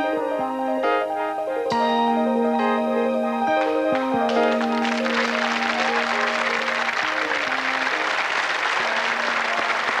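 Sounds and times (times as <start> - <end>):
faint backing music: 0.0 - 10.0
studio audience applauding: 3.6 - 10.0.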